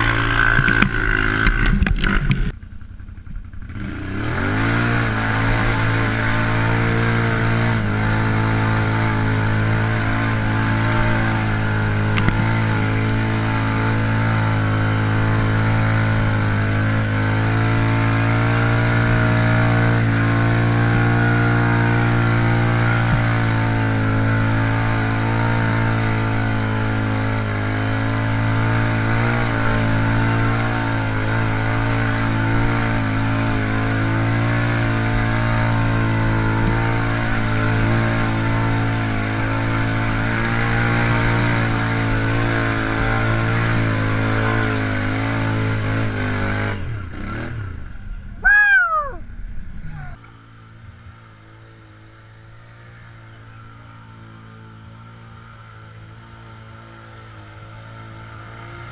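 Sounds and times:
atv engine running: 0:00.0 - 0:58.9.

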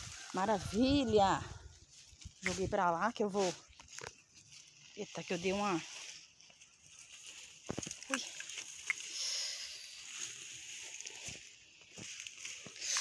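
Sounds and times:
feet shuffling through plants: 0:00.0 - 0:13.0
leaves rustling: 0:00.0 - 0:13.0.

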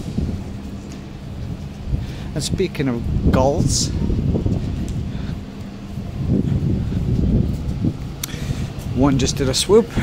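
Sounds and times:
city traffic rumble: 0:00.0 - 0:10.0
wind on microphone: 0:00.0 - 0:10.0.

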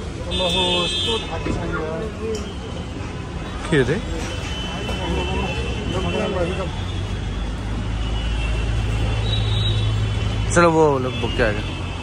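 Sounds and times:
traffic engine hum: 0:00.0 - 0:12.0.

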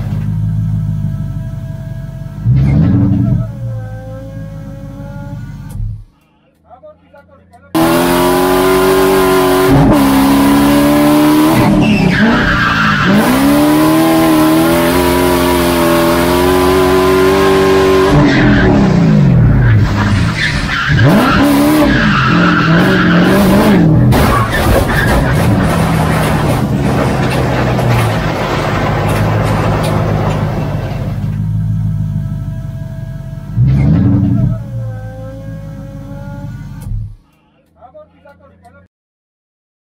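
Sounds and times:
car engine revving hard: 0:02.4 - 0:03.6, 0:07.8 - 0:31.1, 0:33.5 - 0:37.2
tyres squealing and skidding: 0:07.8 - 0:31.3.

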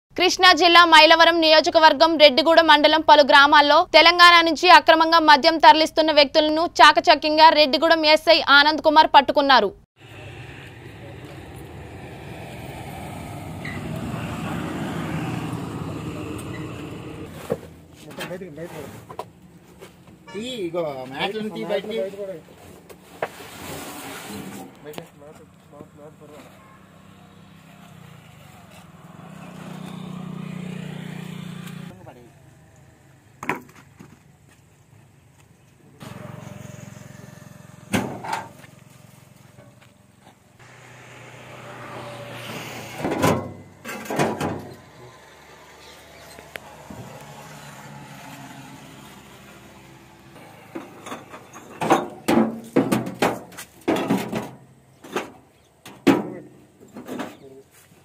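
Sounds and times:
engine humming: 0:10.0 - 0:21.7, 0:24.7 - 0:52.8.

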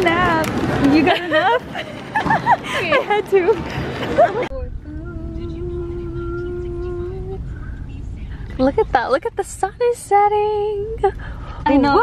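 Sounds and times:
car cabin rumble: 0:04.2 - 0:12.0.

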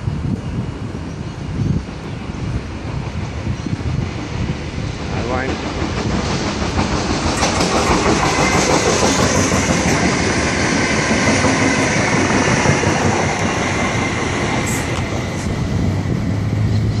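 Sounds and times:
diesel locomotive engines running: 0:00.1 - 0:17.0
train wheels clattering on rails: 0:02.0 - 0:17.0.

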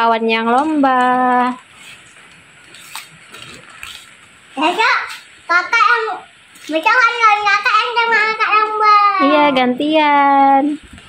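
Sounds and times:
rain hissing: 0:00.2 - 0:11.0.

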